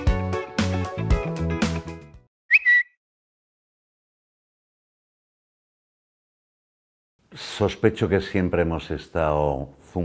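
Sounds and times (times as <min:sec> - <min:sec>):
high whistle sound effect: 0:02.5 - 0:03.0.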